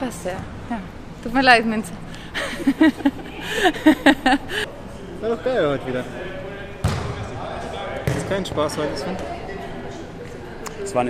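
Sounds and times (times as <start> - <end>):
volleyball being hit: 6.8 - 7.2.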